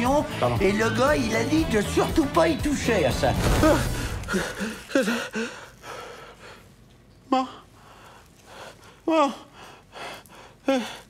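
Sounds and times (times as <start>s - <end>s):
woman gasping cries: 3.6s - 5.8s, 9.0s - 9.9s.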